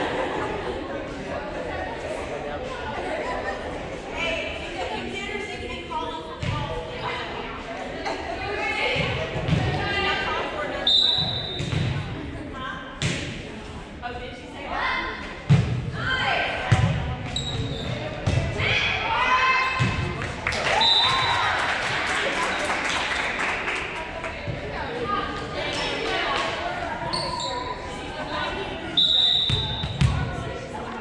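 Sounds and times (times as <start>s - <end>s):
volleyball thumps echoing in a gym: 6.4s - 7.0s, 8.8s - 10.4s, 11.0s - 13.6s, 15.1s - 22.0s, 29.0s - 31.0s.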